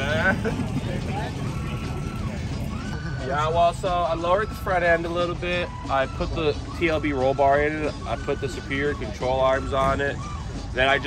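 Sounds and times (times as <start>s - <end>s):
low outdoor rumble: 0.0s - 6.1s.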